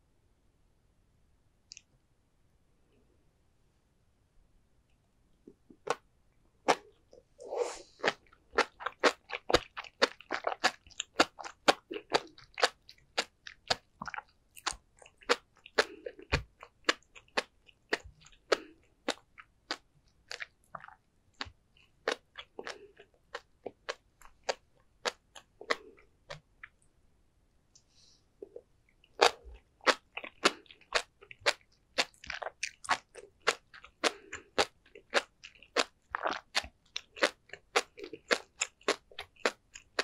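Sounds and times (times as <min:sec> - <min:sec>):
wet mouth sounds: 0:06.7 - 0:26.8
fish roe popping while chewing: 0:08.0 - 0:26.5, 0:29.2 - 0:40.0.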